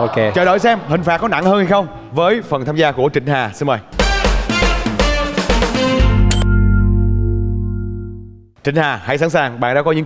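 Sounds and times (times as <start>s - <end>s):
driving drum beat: 4.0s - 6.4s
upbeat game show jingle: 4.0s - 8.5s.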